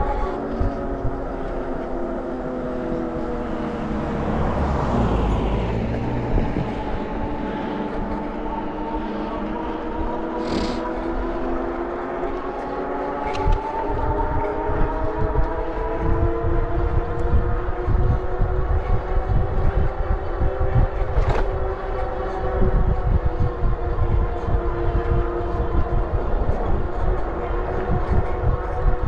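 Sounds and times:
motorcycle engine cruising: 0.0s - 29.0s
wind rumbling on microphone: 0.0s - 29.0s.

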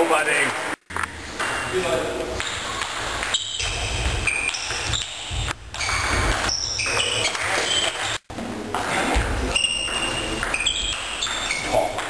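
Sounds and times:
shoe squeaks: 1.4s - 8.2s, 9.5s - 12.0s.

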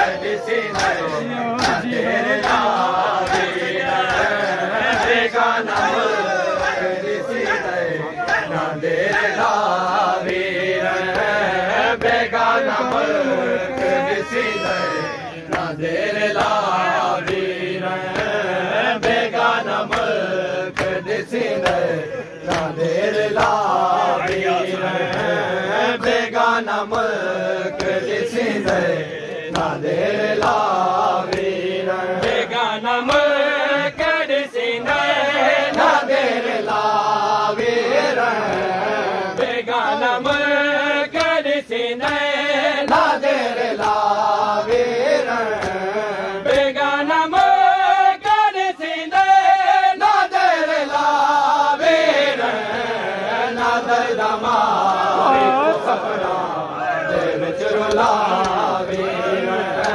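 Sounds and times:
man chanting a lament: 0.0s - 36.5s, 52.0s - 59.9s
hands slapping chests: 0.2s - 25.4s, 26.0s - 32.4s, 33.0s - 33.4s, 40.2s - 42.3s, 42.9s - 47.6s, 57.1s - 59.1s.

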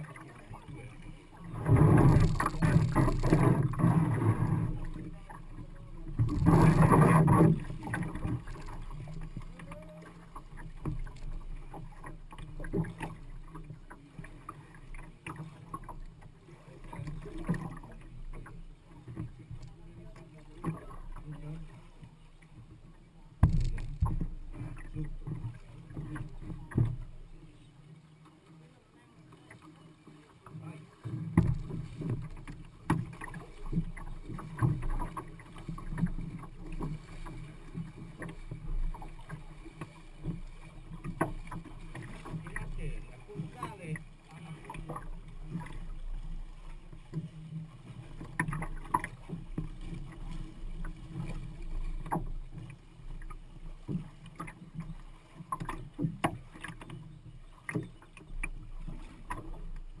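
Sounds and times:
water sloshing against canoe hull: 0.0s - 60.0s
knocks and bumps through hull: 1.4s - 21.4s, 23.4s - 27.3s, 31.0s - 60.0s.

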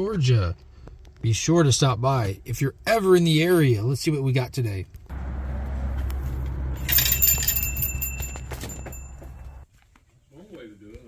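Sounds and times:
door bell jingling: 6.7s - 9.6s.

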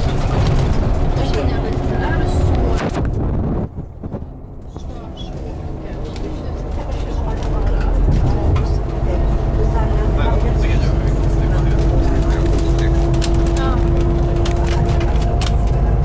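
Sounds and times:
bus engine and road rumble: 0.0s - 16.0s.

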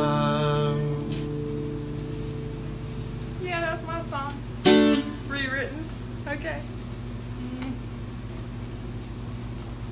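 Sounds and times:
acoustic guitar chord ringing: 0.0s - 5.4s.

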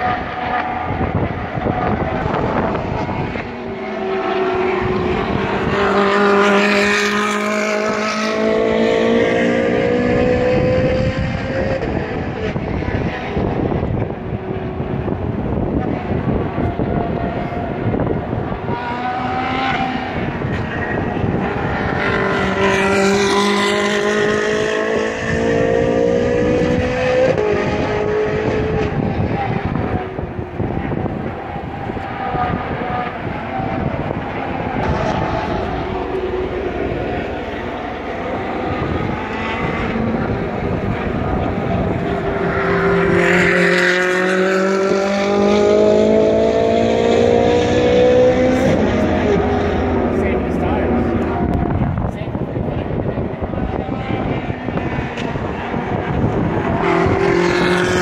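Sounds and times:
race car engines accelerating: 0.0s - 58.0s.

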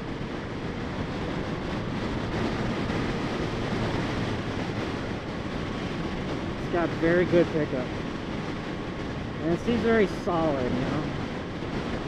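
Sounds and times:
road noise: 0.0s - 12.0s
wind rushing: 0.0s - 12.0s.

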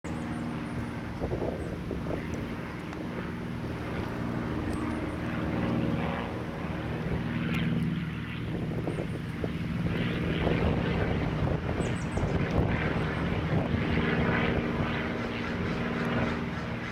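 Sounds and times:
engine drone: 0.0s - 16.9s.

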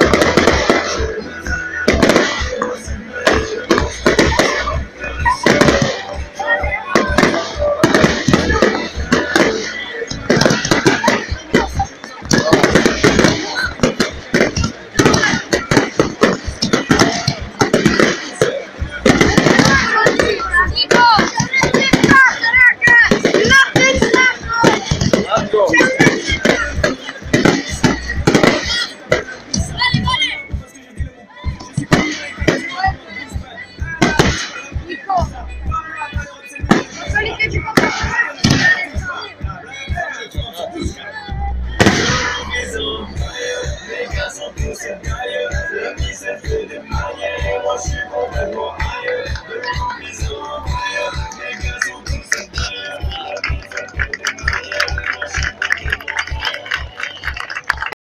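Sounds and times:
fireworks bangs: 0.0s - 33.0s, 33.8s - 35.3s, 36.5s - 39.2s, 41.8s - 58.0s
music with kick-drum beat: 0.0s - 42.4s, 43.2s - 57.9s.

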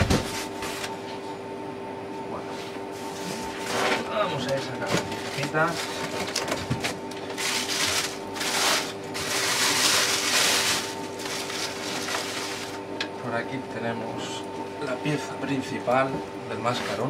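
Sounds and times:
plastic packaging crinkling: 5.2s - 12.8s.

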